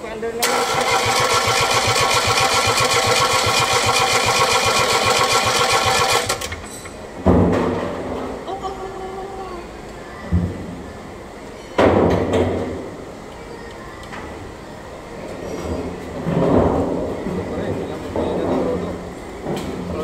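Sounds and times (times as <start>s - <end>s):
starter motor cranking diesel engine: 0.4s - 6.7s.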